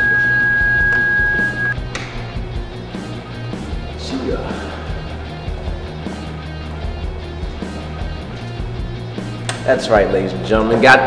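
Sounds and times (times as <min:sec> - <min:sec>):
long electronic beep: 0:00.0 - 0:01.8.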